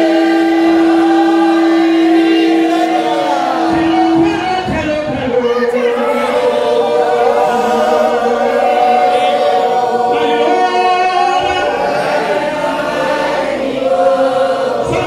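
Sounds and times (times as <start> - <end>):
congregation singing: 0.0 - 15.0.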